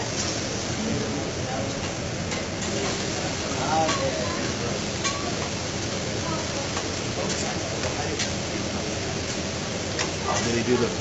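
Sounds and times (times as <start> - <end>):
food sizzling on a griddle: 0.0 - 11.0.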